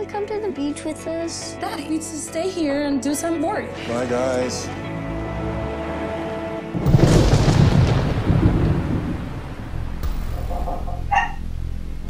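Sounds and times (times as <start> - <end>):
steady rain: 6.8 - 10.6
thunder rumbling: 6.8 - 12.0
dog barking: 11.1 - 11.4.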